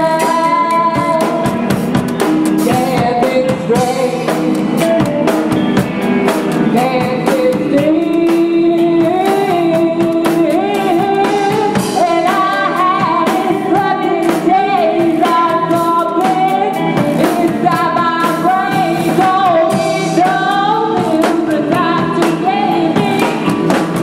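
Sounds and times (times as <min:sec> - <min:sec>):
drums and cymbals: 0:00.0 - 0:24.0
electric guitars: 0:00.0 - 0:24.0
woman singing lead: 0:00.0 - 0:24.0.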